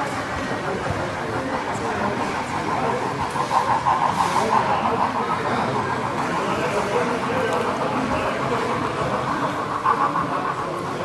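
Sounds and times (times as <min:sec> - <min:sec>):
model train wheels rolling on rails: 0:00.0 - 0:11.0.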